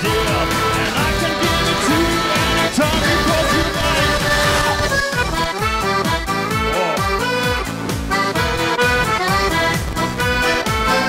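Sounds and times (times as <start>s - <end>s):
band backing: 0.0s - 11.0s
piano accordion solo: 0.0s - 11.0s
steady drum beat: 0.0s - 11.0s.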